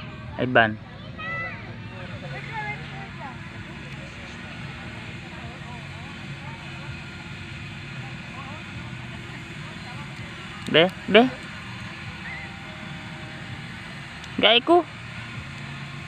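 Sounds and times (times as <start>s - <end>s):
faint distant voices: 0.0s - 16.0s
low motor drone: 0.0s - 16.0s.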